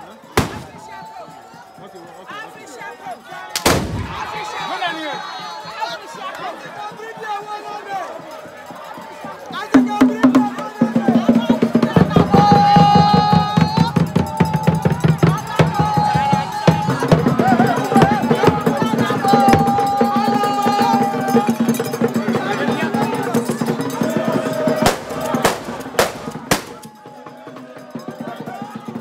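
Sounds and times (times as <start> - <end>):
voices chanting: 0.0 - 1.6, 2.4 - 29.0
drums beaten with sticks: 0.4 - 1.0, 9.8 - 20.2, 23.6 - 26.9.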